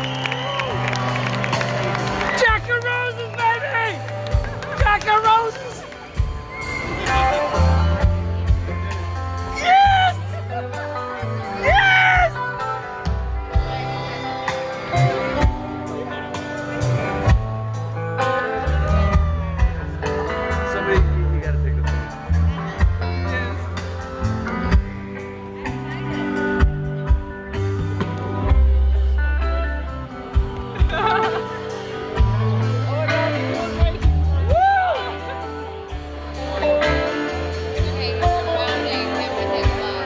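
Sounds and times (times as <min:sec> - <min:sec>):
live rock band playing: 0:00.0 - 0:40.0.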